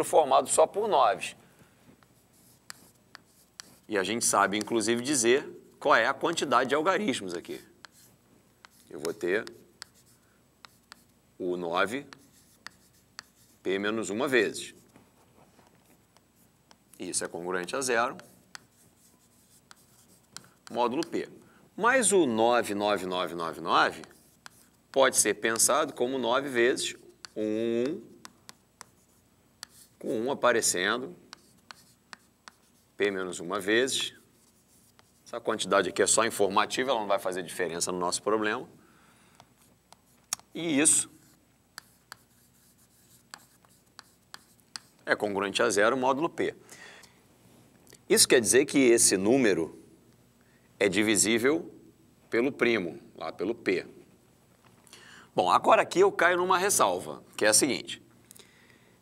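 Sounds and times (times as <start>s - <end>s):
chalk tapping on board: 2.0s - 4.8s, 6.3s - 11.2s, 12.0s - 13.6s, 16.1s - 21.2s, 23.9s - 26.0s, 26.8s - 30.0s, 31.3s - 33.2s, 33.9s - 35.3s, 39.9s - 45.1s
chalk scratching on chalkboard: 2.0s - 5.2s, 6.1s - 11.2s, 11.8s - 14.9s, 16.1s - 21.2s, 23.0s - 36.1s, 39.9s - 45.1s.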